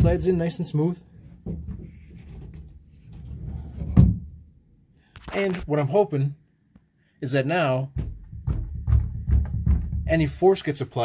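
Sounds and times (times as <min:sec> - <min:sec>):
sliding closet door thumping: 0:01.3 - 0:04.4, 0:08.0 - 0:10.2.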